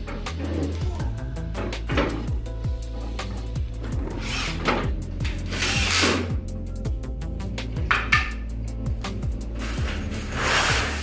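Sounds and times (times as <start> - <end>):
background music: 0.0 - 11.0
cordless drill driving a screw: 5.5 - 6.2.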